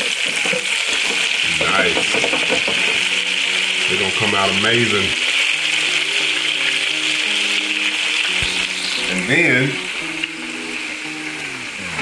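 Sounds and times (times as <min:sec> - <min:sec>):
food sizzling in deep fryer oil: 0:00.0 - 0:12.0
background music chord: 0:03.0 - 0:12.0.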